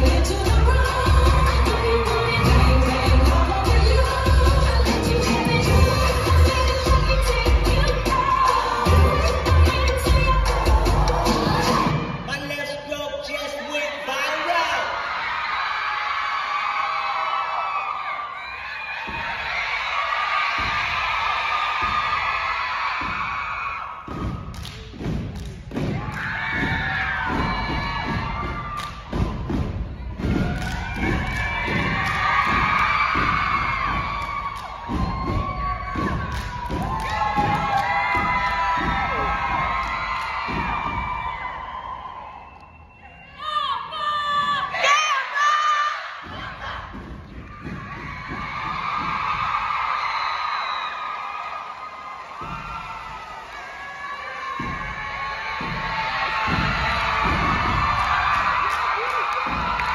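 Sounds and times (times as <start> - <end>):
crowd cheering and yelling: 0.0 - 59.9
stomping and clapping in unison: 15.2 - 42.8, 46.1 - 59.9.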